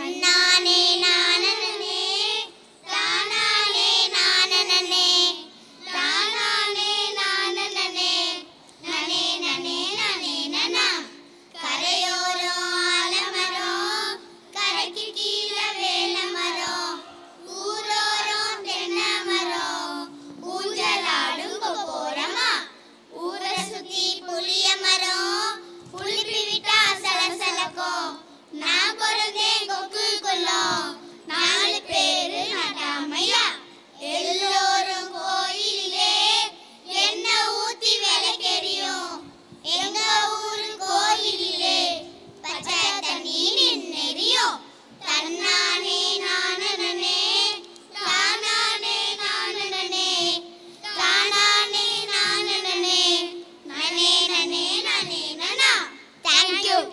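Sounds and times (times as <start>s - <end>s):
children singing into microphones: 0.0s - 56.9s.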